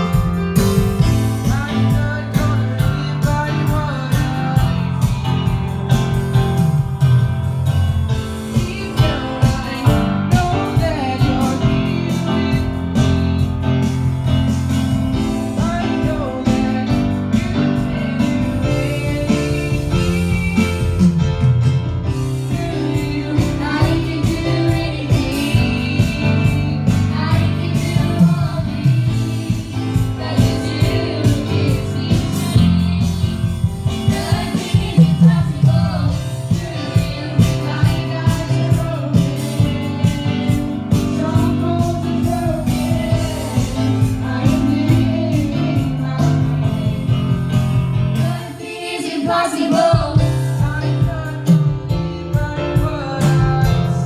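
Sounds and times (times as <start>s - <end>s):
keyboard: 0.0s - 54.0s.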